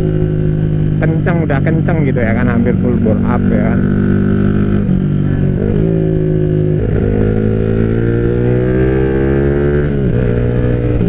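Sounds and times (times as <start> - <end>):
motorcycle engine at speed: 0.0 - 11.0.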